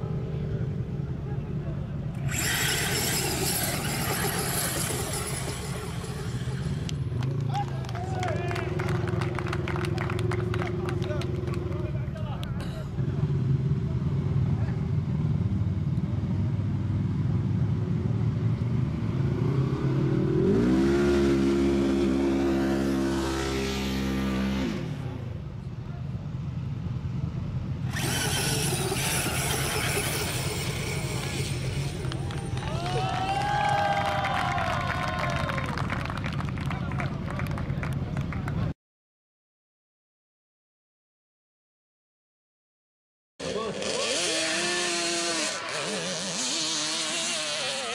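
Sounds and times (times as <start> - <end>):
engine revving: 2.2 - 7.5, 18.7 - 25.4, 27.8 - 32.8, 43.4 - 47.9.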